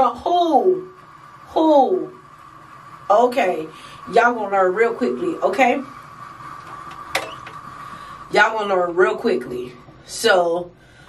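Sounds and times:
appliance hum: 0.0 - 11.0.

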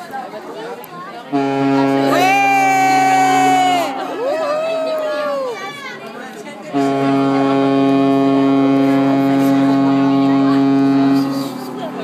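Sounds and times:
ship's horn blast: 1.3 - 4.2, 6.6 - 11.8.

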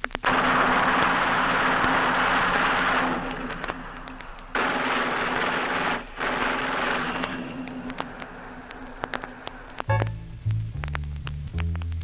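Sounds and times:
loud steady rushing hiss: 0.0 - 10.9
vinyl surface tick: 7.2 - 12.0.

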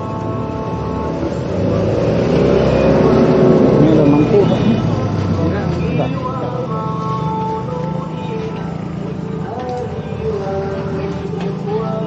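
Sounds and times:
vehicle engine passing by: 0.8 - 6.1
voices in background: 3.7 - 7.0.

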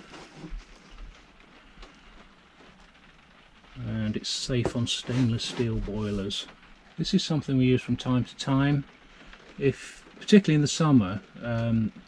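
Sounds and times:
rain on a roof: 0.0 - 12.0.

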